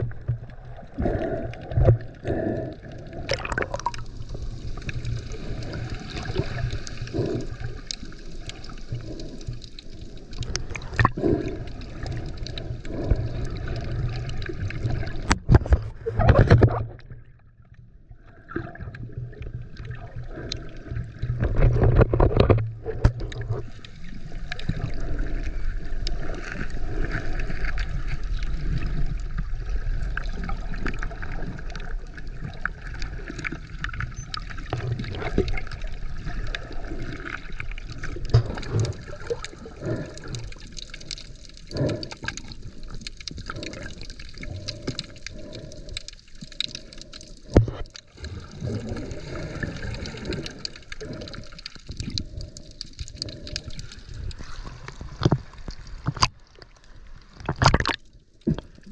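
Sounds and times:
clicks and knocks underwater: 0.0s - 58.9s
water gurgling underwater: 0.0s - 58.9s.

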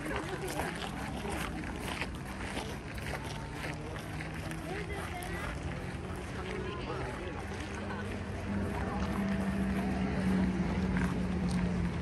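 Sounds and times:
people talking faintly: 0.0s - 12.0s.

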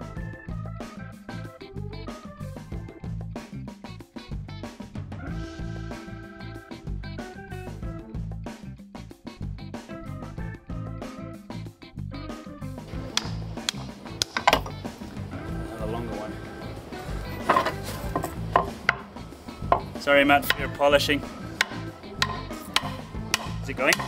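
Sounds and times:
background music with steady beat: 0.0s - 24.0s
hammer knocking on wooden block: 17.5s - 20.7s, 21.6s - 24.0s.

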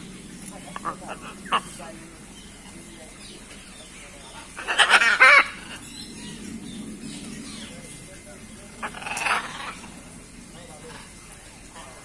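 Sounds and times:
macaws squawking: 0.6s - 8.0s, 8.6s - 10.2s.

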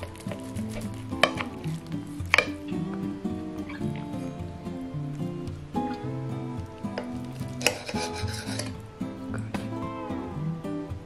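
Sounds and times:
soft background music: 0.0s - 11.0s
cutlery clicks: 7.0s - 8.7s
knife scraping on plate: 7.0s - 8.8s.

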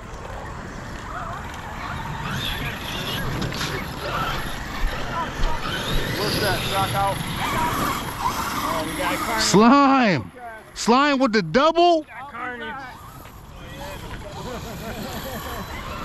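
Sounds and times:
rc truck motor whirring: 0.1s - 10.0s, 12.3s - 16.0s.

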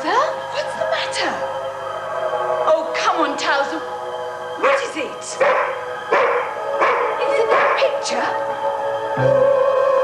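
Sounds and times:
sustained musical tone: 0.0s - 10.0s
dog barking: 4.6s - 7.9s.

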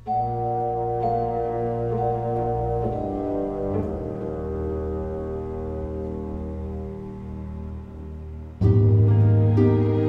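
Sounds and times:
orchestra playing sustained chords: 0.0s - 10.0s.

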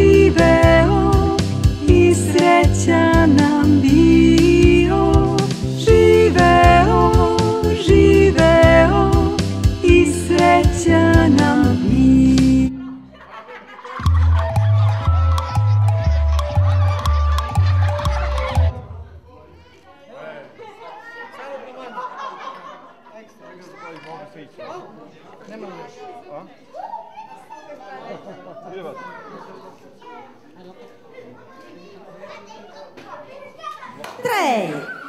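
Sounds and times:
children chattering: 18.9s - 35.0s.

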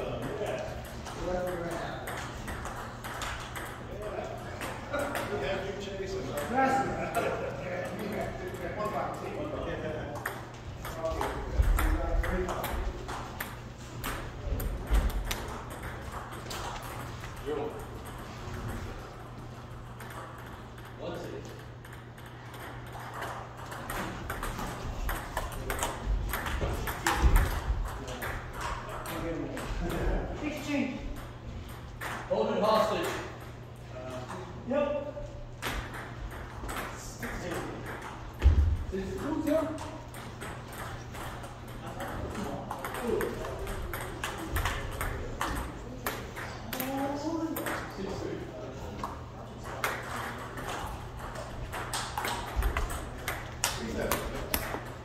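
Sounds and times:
ping pong ball bouncing on table: 0.2s - 3.9s, 10.1s - 18.3s, 19.7s - 29.7s, 35.6s - 47.9s, 49.6s - 55.0s
ping pong ball on paddles: 0.2s - 5.4s, 10.1s - 29.7s, 35.6s - 38.6s, 39.2s - 48.0s, 49.0s - 55.0s.

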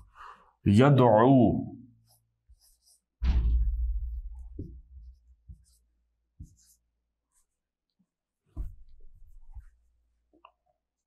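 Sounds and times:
marker squeaking on whiteboard: 2.0s - 3.1s.

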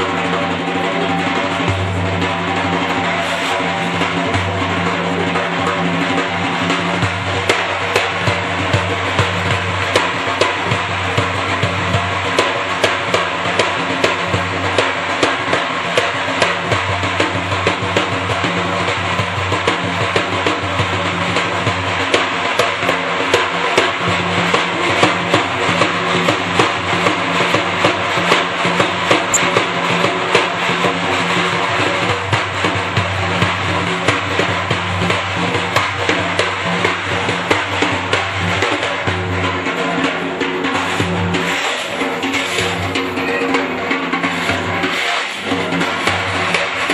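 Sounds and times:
frame drum strokes: 0.0s - 46.9s.

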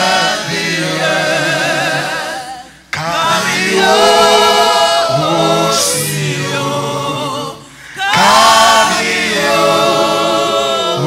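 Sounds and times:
gospel singing without instruments: 0.0s - 11.0s.

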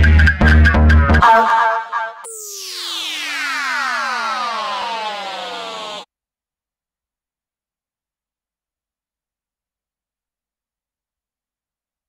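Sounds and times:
falling synthesizer sweep: 2.3s - 6.1s.

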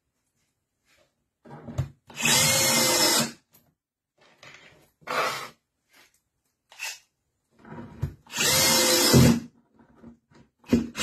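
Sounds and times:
drill motor whining: 2.2s - 3.3s, 8.3s - 9.4s.

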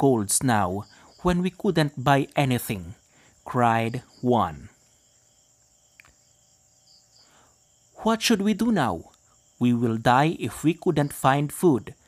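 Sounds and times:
small click: 5.9s - 6.2s.

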